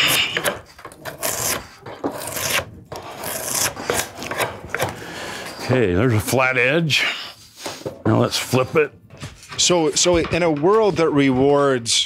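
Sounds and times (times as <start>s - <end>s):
drawknife scraping wood: 0.0s - 5.6s.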